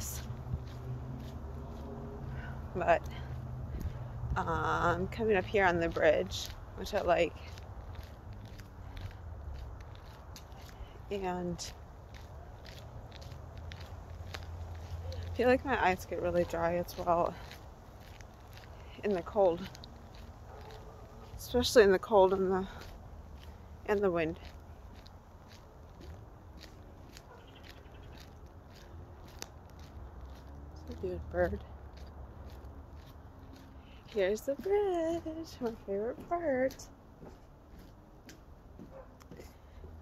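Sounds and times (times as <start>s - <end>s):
wind rumble on microphone: 0.0s - 15.4s
faint footsteps on path: 0.0s - 40.0s.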